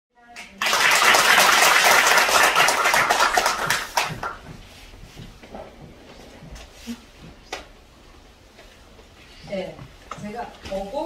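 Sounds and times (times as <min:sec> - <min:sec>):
audience applauding: 0:00.4 - 0:04.4.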